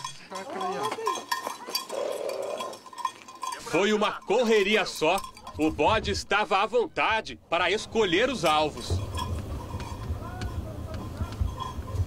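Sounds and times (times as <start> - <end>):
goat bell clinking: 0.0 - 5.9, 8.0 - 12.0.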